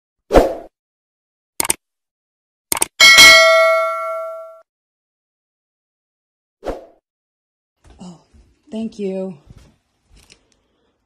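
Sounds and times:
notification bell chime: 3.0s - 4.6s.

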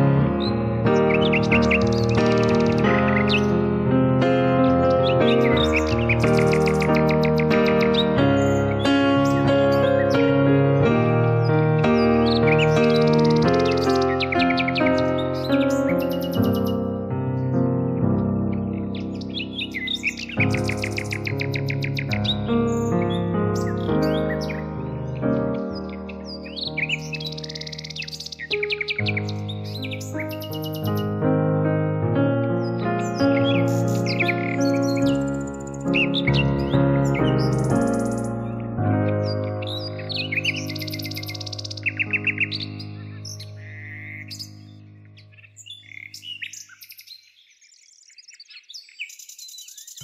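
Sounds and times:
birds chirping: 0.0s - 31.3s, 32.1s - 50.0s
slow instrumental music: 0.0s - 46.6s.

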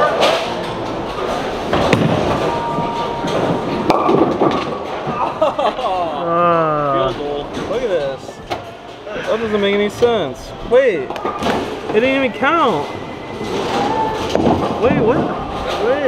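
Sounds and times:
bowling pins clattering: 0.0s - 6.2s, 11.0s - 16.0s
bowling ball rolling: 0.0s - 8.0s, 11.1s - 16.0s.

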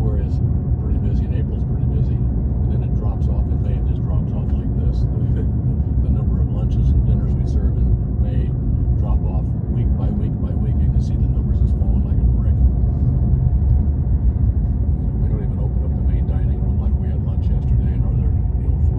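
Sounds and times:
faint talking: 0.0s - 12.6s, 15.0s - 18.9s
car road and engine rumble: 0.0s - 18.9s.

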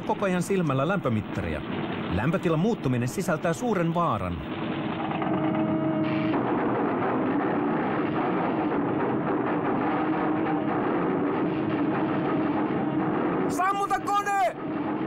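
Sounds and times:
crackling rattle: 0.0s - 15.0s
machinery humming: 0.0s - 15.0s.

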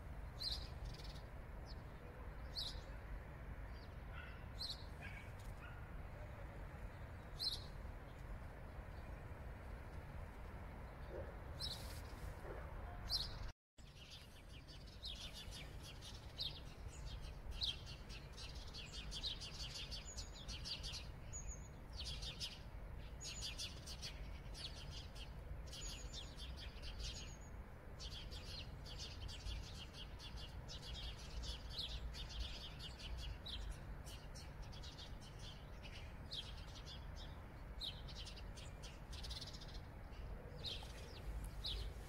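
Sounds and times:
small birds chirping: 0.2s - 3.1s, 10.8s - 42.0s.

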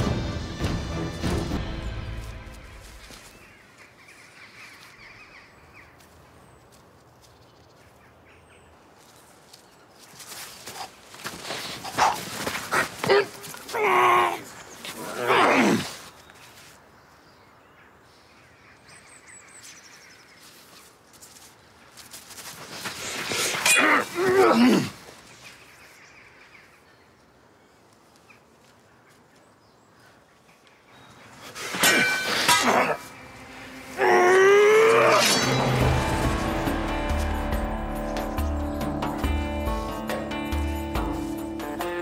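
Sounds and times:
scuffling footsteps on grass: 1.9s - 4.0s, 4.6s - 15.2s, 19.6s - 26.0s
sword swish: 31.6s - 36.2s
sharp blade hits: 31.7s - 33.9s, 34.7s - 36.6s.

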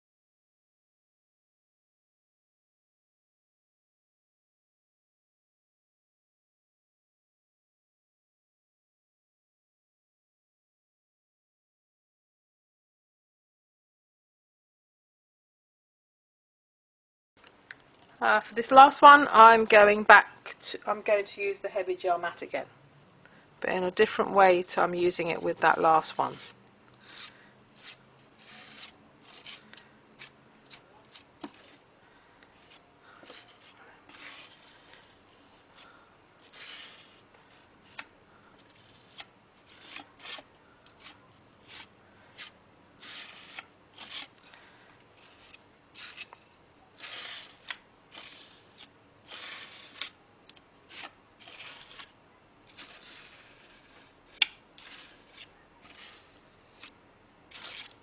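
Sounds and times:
palette knife scraping on paper: 24.6s - 31.9s, 32.5s - 50.2s, 50.9s - 58.0s.

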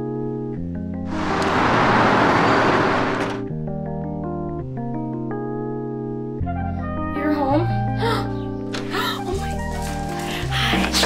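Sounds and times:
loud even rushing noise: 1.1s - 3.5s
quiet background music: 3.4s - 11.0s.

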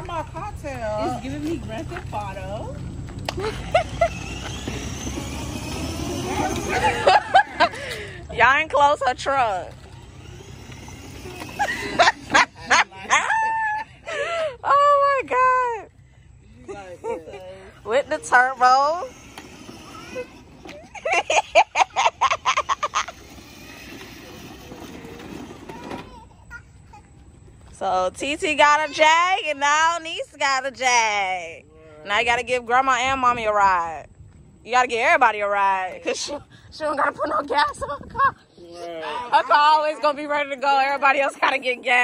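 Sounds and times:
toy car rumbling on asphalt: 0.0s - 13.5s, 17.7s - 30.7s
laughter in quick bursts: 20.9s - 23.3s.

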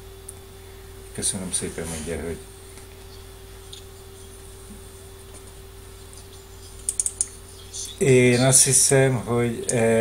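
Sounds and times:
faint steady hum: 0.0s - 10.0s
sharp clicks: 6.8s - 7.4s.

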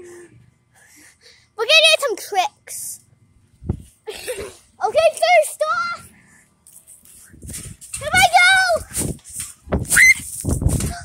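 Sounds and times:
trampoline bouncing thumps: 7.3s - 11.0s.

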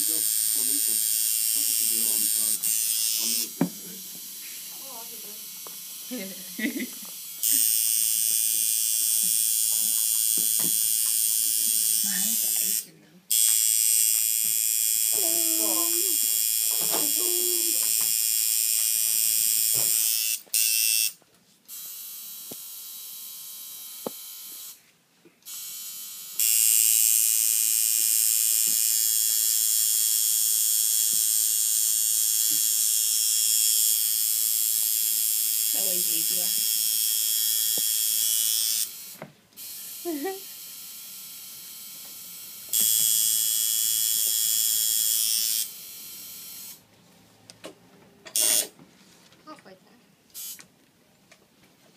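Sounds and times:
tattoo machine buzzing: 0.0s - 24.8s, 25.4s - 46.8s, 48.3s - 48.8s, 50.4s - 50.6s.

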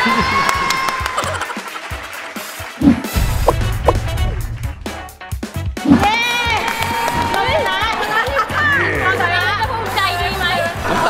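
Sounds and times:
people shouting and cheering: 0.0s - 1.6s, 6.0s - 9.2s.

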